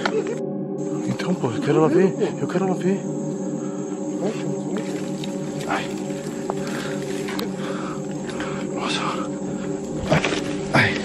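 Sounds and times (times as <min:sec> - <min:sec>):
low droning horror music: 0:00.0 - 0:11.0.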